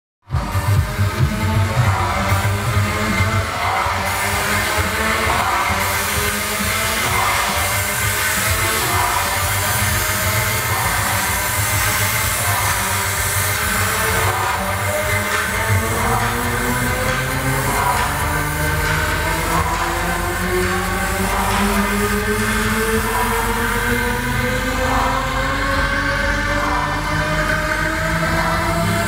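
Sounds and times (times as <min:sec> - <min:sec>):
electronic dance music: 0:00.2 - 0:29.0.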